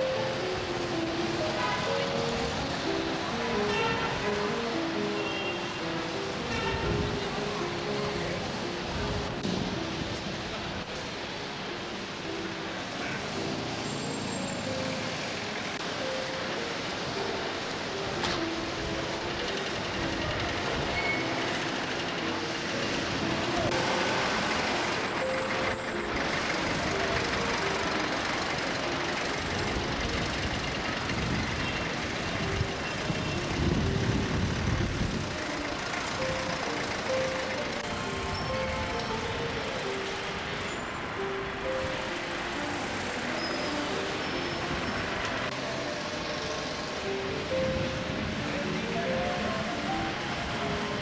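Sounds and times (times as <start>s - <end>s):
heavy vehicle passing: 0.0s - 51.0s
street traffic noise: 0.0s - 51.0s.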